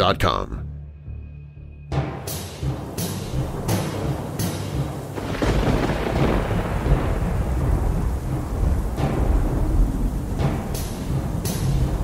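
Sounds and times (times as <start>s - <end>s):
thunder rumbling: 3.4s - 12.0s
steady rain: 3.9s - 12.0s.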